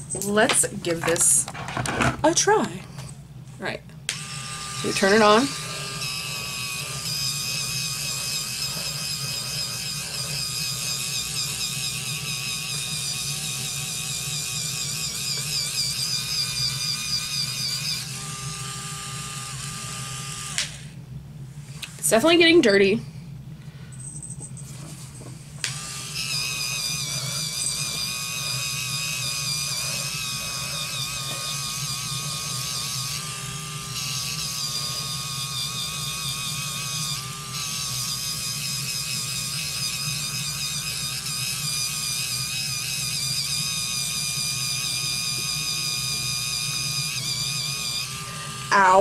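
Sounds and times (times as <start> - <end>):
facial brush motor whining: 4.1 - 21.0, 25.6 - 49.0.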